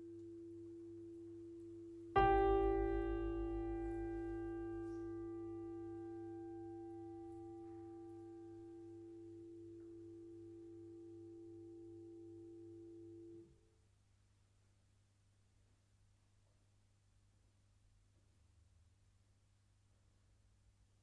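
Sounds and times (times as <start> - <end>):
grand piano chord ringing: 2.2 - 9.8.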